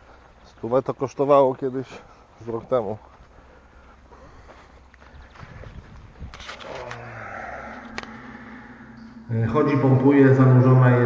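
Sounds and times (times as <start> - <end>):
low rumble of handling noise: 5.5 - 10.3.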